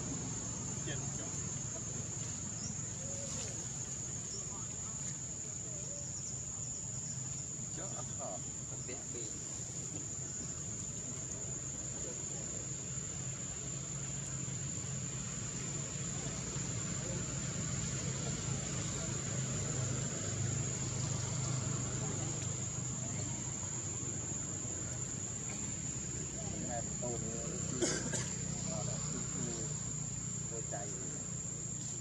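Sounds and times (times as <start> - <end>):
low continuous hum: 0.0 - 32.0.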